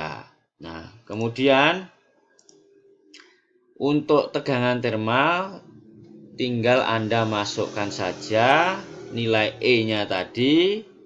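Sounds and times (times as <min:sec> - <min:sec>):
faint low hum: 0:00.0 - 0:11.0
computer mouse clicks: 0:02.4 - 0:02.6.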